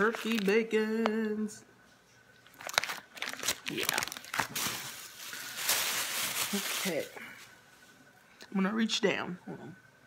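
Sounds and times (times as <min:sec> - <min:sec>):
plastic bags crinkling: 0:00.0 - 0:01.1, 0:02.4 - 0:07.6.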